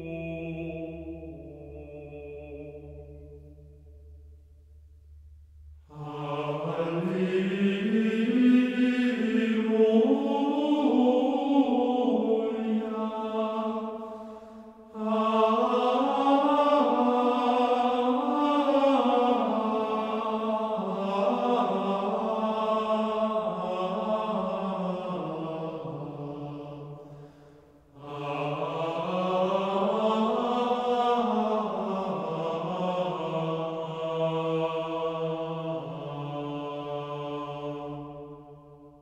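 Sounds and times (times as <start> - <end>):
choir singing slow sacred piece: 0.0 - 39.0.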